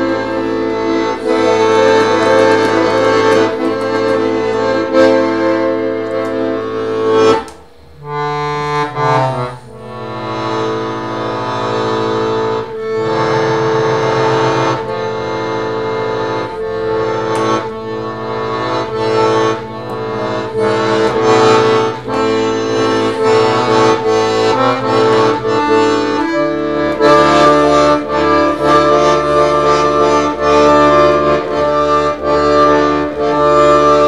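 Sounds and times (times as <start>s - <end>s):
piano accordion melody: 0.0s - 34.0s.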